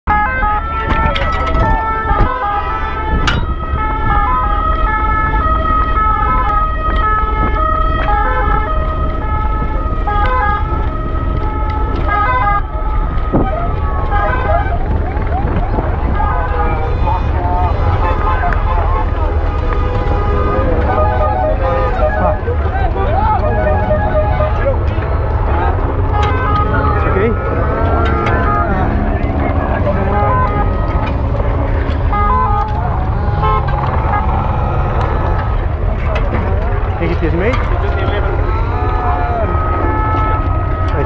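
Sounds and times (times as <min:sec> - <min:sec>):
two-tone emergency sirens: 0:00.1 - 0:41.0
wind rumble on microphone: 0:00.1 - 0:41.0
overlapping voices: 0:13.8 - 0:37.0
gliding tones: 0:15.2 - 0:37.0.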